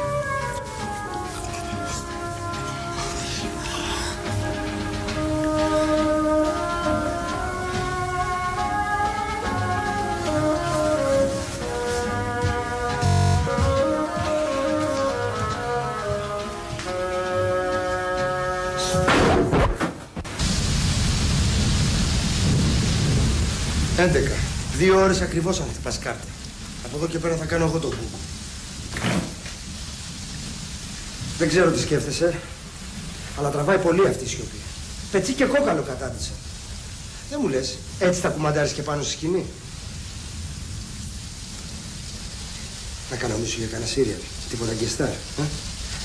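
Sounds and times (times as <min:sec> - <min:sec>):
heavy rain pouring: 0:00.0 - 0:46.0
steady hissing noise: 0:00.0 - 0:46.0.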